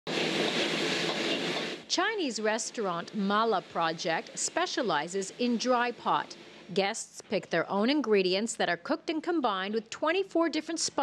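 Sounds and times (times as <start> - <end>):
gas burner flame rushing: 0.1 - 1.9
food sizzling in a wok: 0.1 - 6.7.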